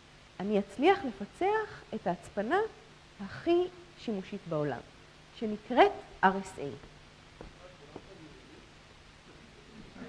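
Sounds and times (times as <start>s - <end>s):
soft taps: 6.8s - 8.1s.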